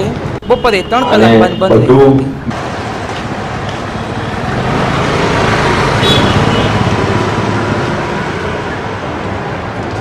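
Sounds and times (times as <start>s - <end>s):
motorcycle engines passing: 1.0s - 10.0s.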